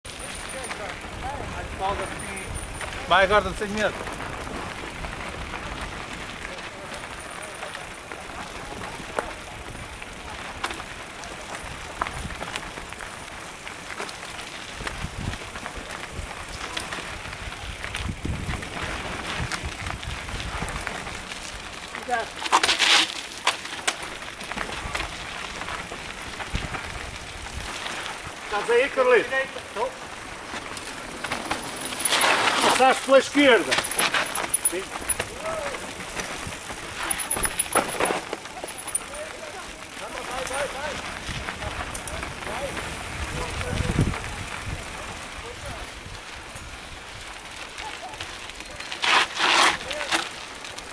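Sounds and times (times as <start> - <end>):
bike tyres crunching on loose ground: 0.0 - 50.9
wind rumble on microphone: 0.1 - 21.9, 24.2 - 28.5, 34.9 - 37.7, 39.8 - 48.6
bike knocks and rattles: 30.1 - 44.4.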